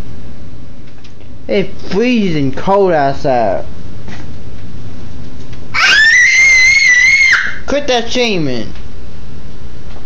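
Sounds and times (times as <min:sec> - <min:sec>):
girl screaming: 0:05.7 - 0:07.6.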